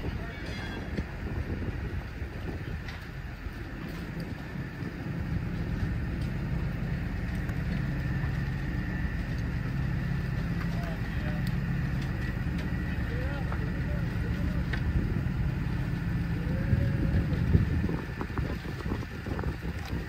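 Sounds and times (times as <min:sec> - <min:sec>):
crane engine droning: 0:00.0 - 0:20.0.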